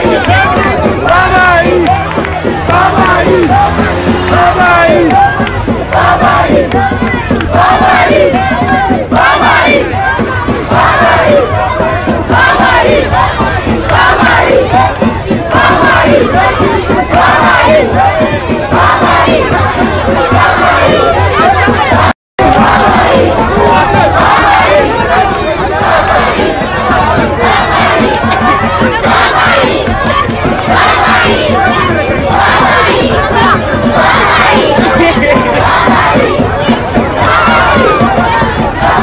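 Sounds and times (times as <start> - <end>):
crowd of men calling out: 0.0 - 39.0.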